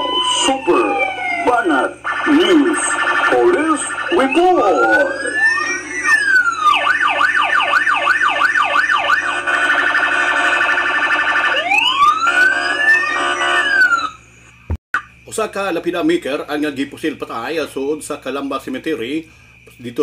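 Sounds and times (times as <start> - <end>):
police siren: 0.0 - 14.3.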